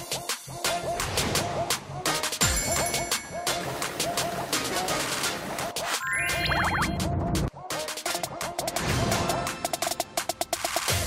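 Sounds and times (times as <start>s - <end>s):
background music with steady beat: 0.0s - 11.0s
wobbling whistle-like effect: 6.0s - 7.0s.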